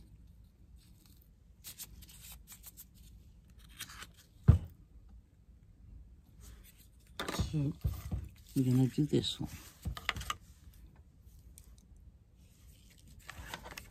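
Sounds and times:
person speaking: 7.2s - 10.4s
paper and ribbon rustling: 12.4s - 13.9s.

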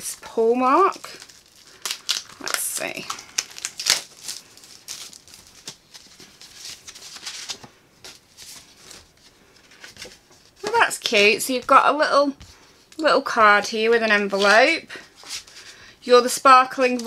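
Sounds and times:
paper packaging rustling: 0.7s - 10.9s.

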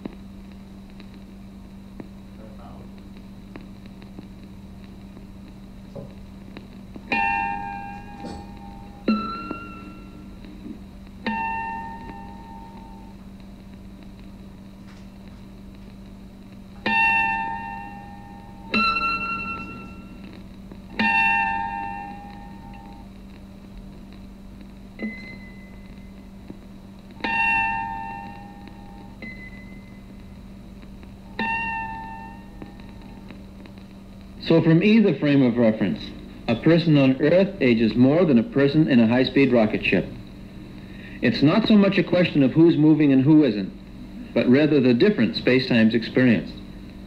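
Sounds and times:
steady low hum: 0.0s - 47.0s
chime-like ringing notes: 7.1s - 10.2s.

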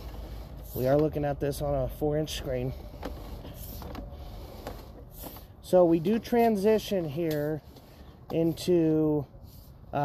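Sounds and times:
cable reel rattle and hiss: 0.0s - 10.0s.

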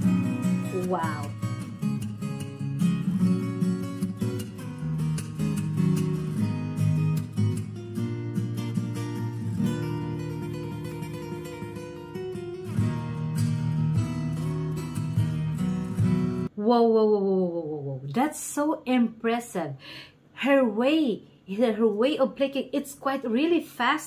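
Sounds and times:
fingerstyle acoustic guitar: 0.0s - 16.5s.

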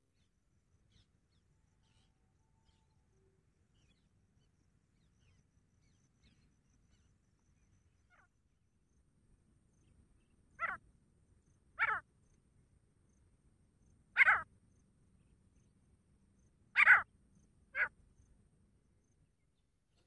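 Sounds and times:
francolin calling: 10.6s - 10.8s, 11.8s - 12.0s, 14.2s - 14.5s, 16.8s - 17.1s, 17.8s - 18.0s.

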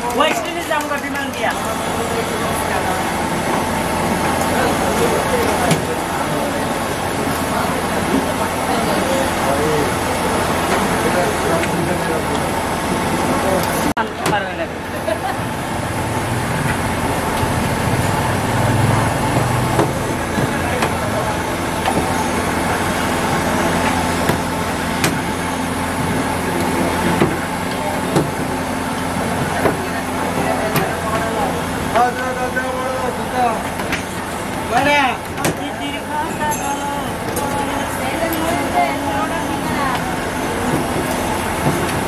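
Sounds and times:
people's voices: 0.0s - 42.0s
vehicle engines and traffic: 0.0s - 42.0s.

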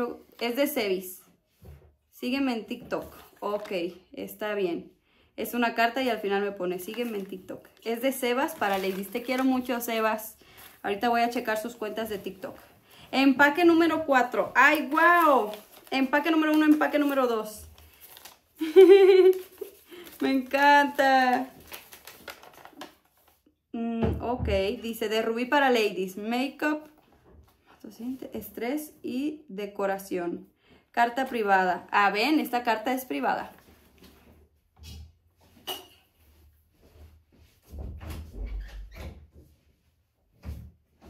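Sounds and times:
paper rustling: 2.9s - 4.0s, 6.6s - 23.5s.

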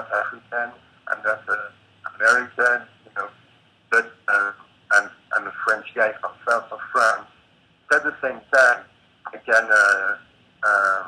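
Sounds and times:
man speaking over call line: 0.0s - 11.0s.

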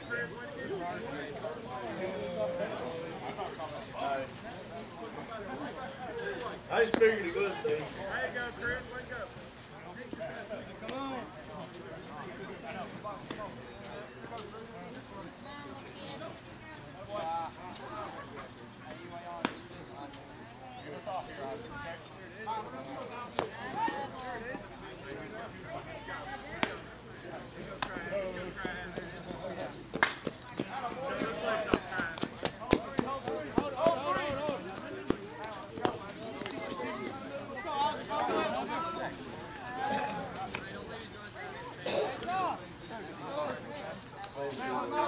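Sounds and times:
distant voices calling: 0.0s - 9.6s, 17.4s - 45.0s.

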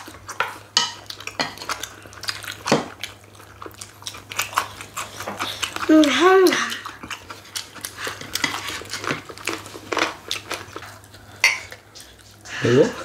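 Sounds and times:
chopsticks and dishes clattering: 0.3s - 1.9s, 8.0s - 10.7s, 11.4s - 11.8s.

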